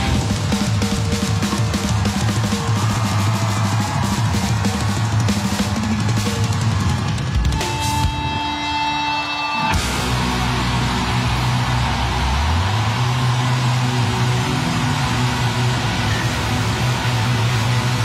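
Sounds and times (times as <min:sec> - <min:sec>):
bass line: 0:00.0 - 0:01.1, 0:09.7 - 0:18.0
distorted electric guitars: 0:00.0 - 0:18.0
live rock band playing: 0:00.0 - 0:18.0.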